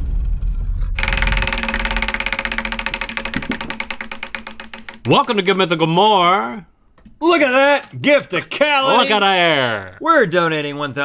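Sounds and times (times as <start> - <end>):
prize wheel ticking: 1.0 - 5.6.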